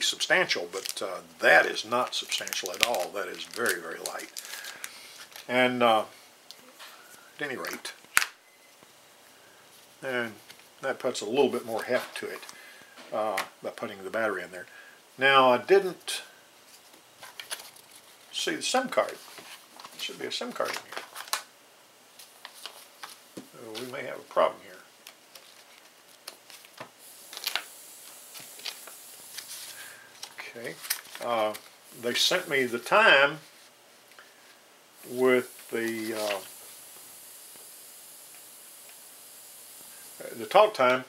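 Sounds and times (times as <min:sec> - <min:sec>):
paper cards rustling: 0:00.0 - 0:01.0, 0:01.7 - 0:05.5, 0:16.8 - 0:18.3, 0:18.9 - 0:21.5, 0:22.2 - 0:24.0, 0:25.0 - 0:31.8, 0:35.7 - 0:36.6.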